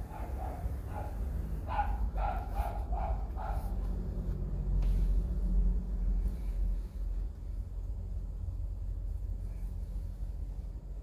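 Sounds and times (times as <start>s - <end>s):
dog barking: 0.0s - 3.9s
steady low hum: 0.0s - 11.0s.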